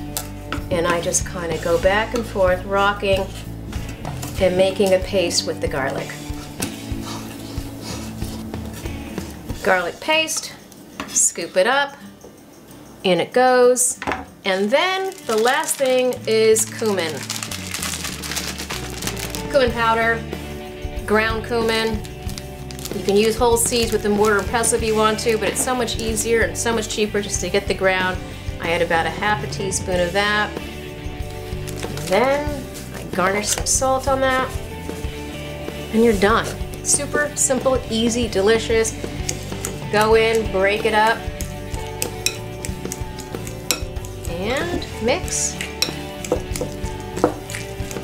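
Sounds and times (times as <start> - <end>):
background music with bass: 0.0 - 9.7, 16.2 - 48.0
plastic bag crinkling: 14.5 - 19.5, 22.4 - 24.4
spoon clicking against glass bowl: 42.0 - 44.2.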